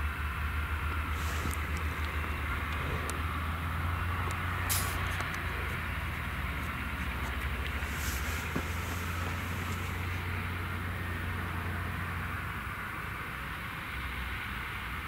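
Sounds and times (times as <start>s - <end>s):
low engine drone: 0.0s - 15.0s.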